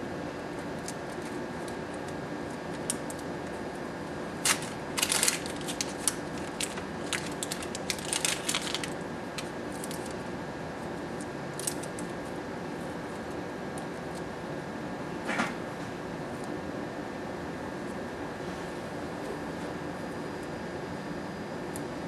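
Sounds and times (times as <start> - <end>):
room hum: 0.0 - 22.0
paper wrapper crackling: 4.4 - 10.2, 11.2 - 12.1.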